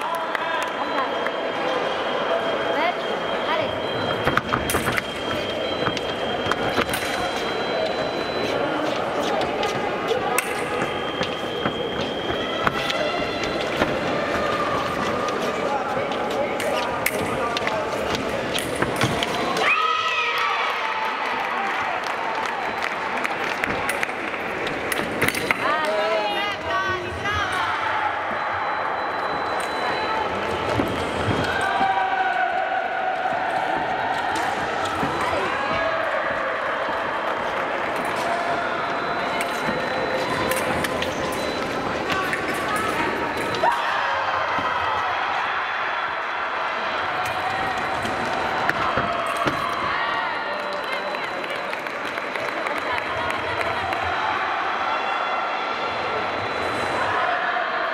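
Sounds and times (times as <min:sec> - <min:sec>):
shouts and calls in a hall: 0:00.0 - 0:57.9.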